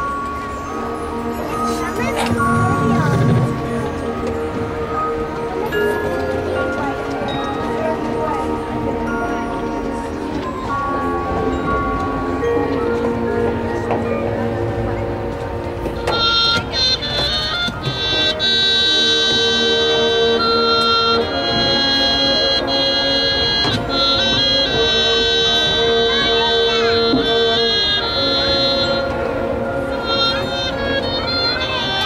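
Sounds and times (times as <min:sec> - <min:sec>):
marching band wind chords: 0:00.0 - 0:32.0.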